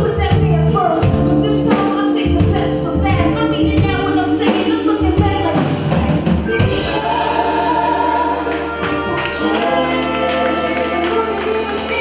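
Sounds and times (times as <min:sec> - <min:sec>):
live gospel-like band music: 0:00.0 - 0:12.0
singers holding long notes: 0:05.6 - 0:12.0.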